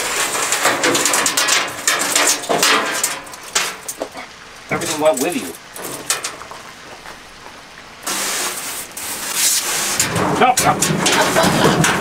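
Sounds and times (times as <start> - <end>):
water spraying into steel tub: 0.0 - 6.5, 8.0 - 12.0.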